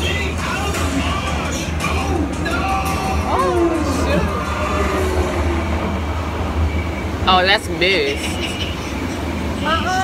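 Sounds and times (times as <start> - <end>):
ride cars rumbling on track: 0.0 - 10.0.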